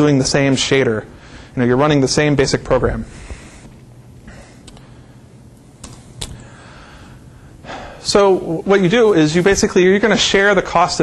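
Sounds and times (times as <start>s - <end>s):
man speaking: 0.0s - 3.2s, 8.0s - 11.0s
man inhaling: 1.1s - 1.6s, 3.0s - 5.4s, 6.3s - 8.1s.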